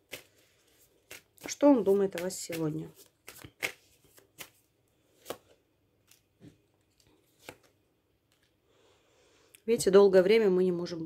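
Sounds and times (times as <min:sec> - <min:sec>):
cards snapping on wooden table: 0:02.1 - 0:04.6, 0:07.3 - 0:07.7.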